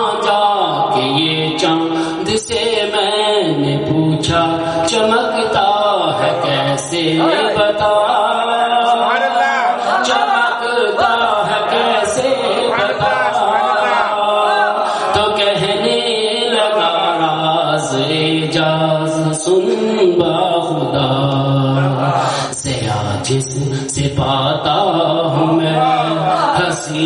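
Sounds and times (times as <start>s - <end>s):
man chanting into a microphone: 0.0s - 27.0s.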